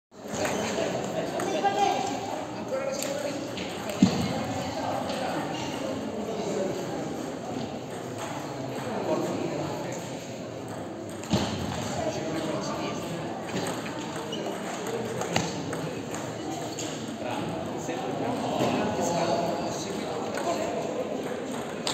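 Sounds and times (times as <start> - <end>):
voices chattering: 0.2 - 21.9.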